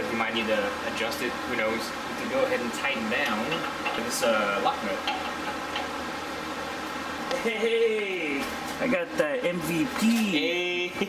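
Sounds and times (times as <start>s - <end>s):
steady background hiss: 0.0s - 11.0s.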